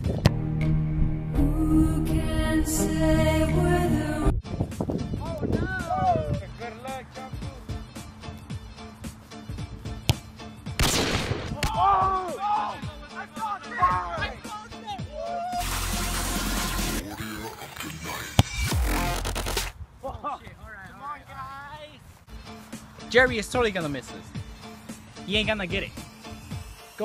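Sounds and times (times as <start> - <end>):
background music: 0.0 - 19.8, 22.2 - 27.0
wind gusts on microphone: 4.1 - 6.5
ball being kicked: 9.9 - 10.3, 18.4 - 18.7.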